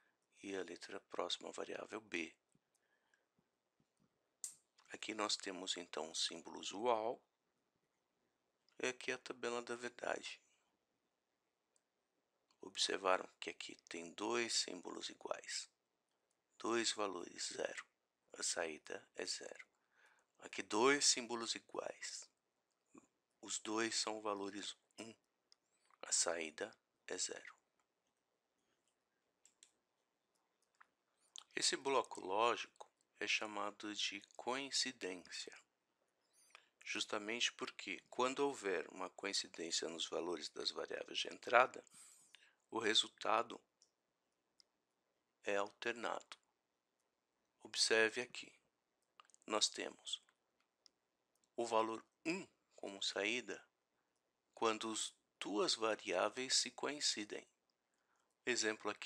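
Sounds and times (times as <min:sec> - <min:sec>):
narration voice: 0:00.4 - 0:02.3, 0:04.9 - 0:07.2, 0:08.8 - 0:10.4, 0:12.6 - 0:15.7, 0:16.6 - 0:17.8, 0:18.4 - 0:19.6, 0:20.4 - 0:22.2, 0:23.4 - 0:25.1, 0:26.0 - 0:27.5, 0:31.4 - 0:35.6, 0:36.8 - 0:42.0, 0:42.8 - 0:43.6, 0:45.5 - 0:46.4, 0:47.6 - 0:48.5, 0:49.5 - 0:50.2, 0:51.6 - 0:53.6, 0:54.6 - 0:57.4, 0:58.5 - 0:59.0.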